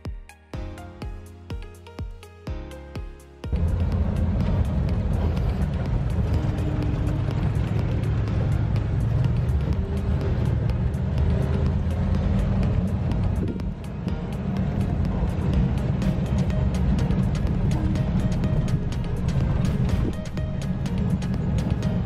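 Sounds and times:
truck engine and road rumble: 3.5s - 22.0s.

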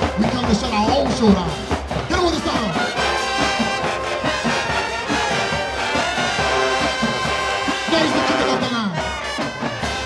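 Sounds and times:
low pulsing drum beat: 0.0s - 8.6s
marching band brass playing: 0.0s - 10.0s.

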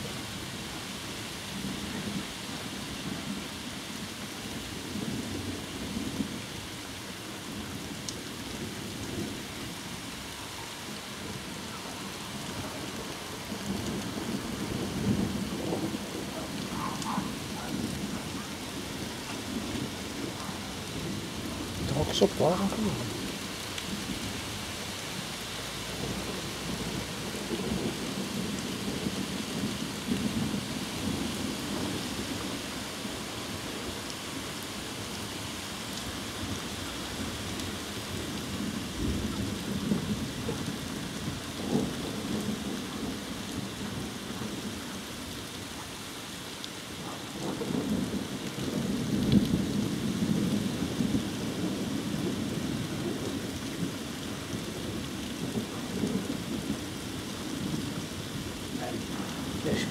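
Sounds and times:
steady rain falling: 0.0s - 59.9s
thunder rumbling: 11.1s - 24.7s, 25.9s - 32.5s, 47.2s - 59.9s.

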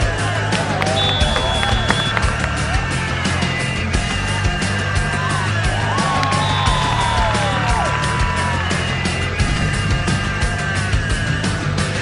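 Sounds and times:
driving music with heavy bass: 0.0s - 12.0s.

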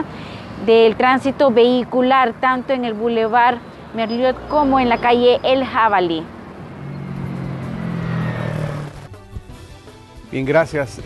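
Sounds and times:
vehicle engine humming: 0.0s - 10.6s.

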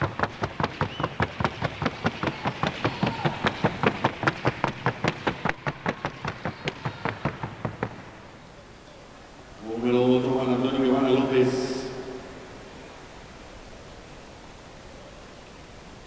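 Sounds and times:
hooves knocking on wooden board: 0.0s - 8.3s.

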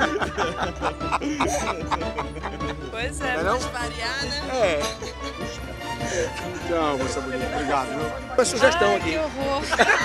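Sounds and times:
background music: 0.0s - 10.0s
people laughing: 0.0s - 10.0s.

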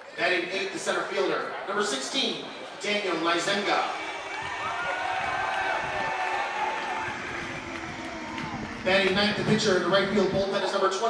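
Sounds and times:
crowd cheering and shouting: 2.5s - 10.5s.

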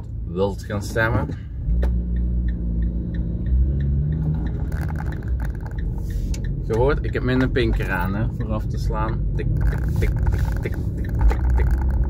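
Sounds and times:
car engine from inside cabin: 0.0s - 12.0s
turn signal ticking: 0.0s - 12.0s.

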